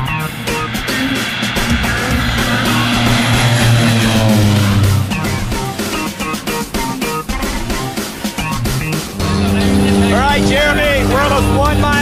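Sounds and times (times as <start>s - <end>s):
airplane engine drone in cabin: 0.0s - 6.7s, 8.9s - 12.0s
rock guitar music: 0.0s - 12.0s
voices: 9.1s - 12.0s.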